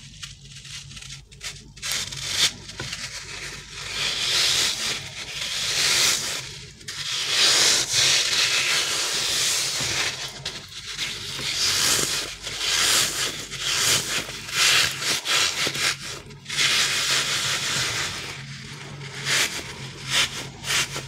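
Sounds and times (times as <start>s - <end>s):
hands rubbing rubbery toy: 0.0s - 21.0s.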